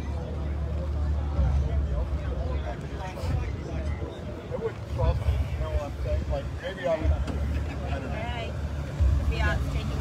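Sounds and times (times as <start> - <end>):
people talking: 0.0 - 8.6, 9.2 - 10.0
constant low rumble: 0.0 - 10.0.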